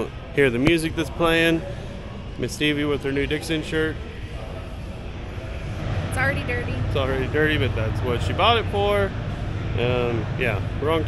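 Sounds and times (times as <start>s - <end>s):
faint voices of people: 0.0s - 11.0s
steady low rumble: 0.0s - 11.0s.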